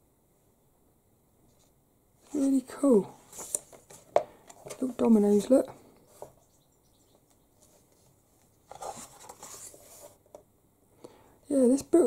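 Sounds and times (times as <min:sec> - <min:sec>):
book page turning: 0:03.2 - 0:05.5, 0:07.6 - 0:10.3.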